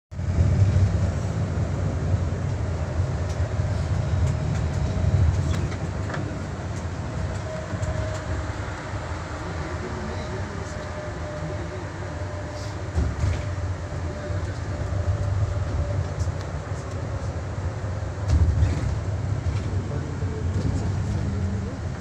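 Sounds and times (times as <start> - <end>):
bus engine and road rumble: 0.1 - 22.0.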